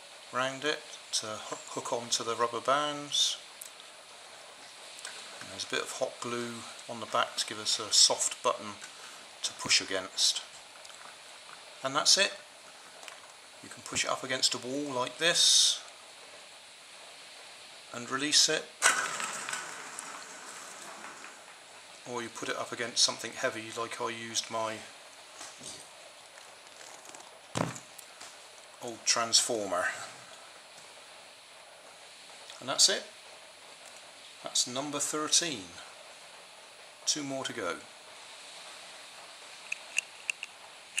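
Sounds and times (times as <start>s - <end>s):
faint steady hiss: 0.0s - 41.0s
toy car rolling on wooden floor: 18.8s - 21.8s.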